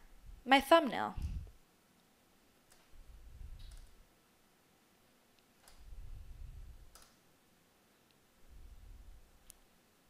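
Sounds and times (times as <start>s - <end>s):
computer mouse clicks: 2.7s - 2.9s, 3.6s - 4.0s, 5.4s - 5.9s, 6.9s - 7.2s
low dull rumble: 5.8s - 6.9s.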